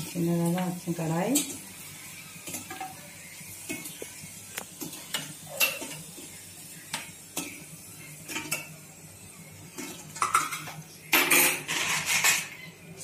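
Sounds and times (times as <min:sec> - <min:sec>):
metal ladle clinking and scraping pan: 0:04.8 - 0:06.1, 0:09.8 - 0:12.6.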